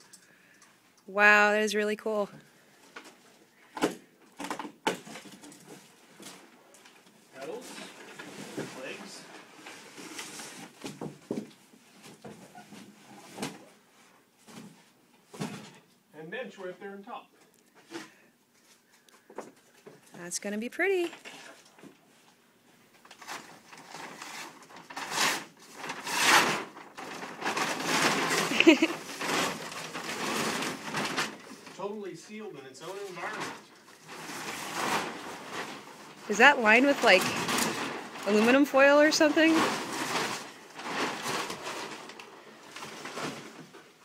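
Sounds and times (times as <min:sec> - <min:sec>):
foil-lined paper crinkling: 0:04.4 - 0:11.0, 0:23.0 - 0:44.0
person laughing: 0:28.5 - 0:29.0.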